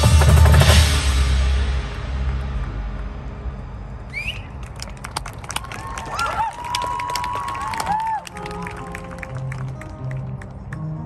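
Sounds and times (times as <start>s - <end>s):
percussion strikes: 0.0s - 3.8s.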